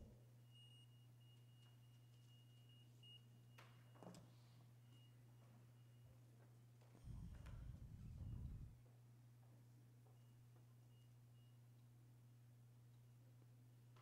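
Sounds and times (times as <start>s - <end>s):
low electrical hum: 0.0s - 14.0s
low muffled rumble: 7.0s - 8.8s.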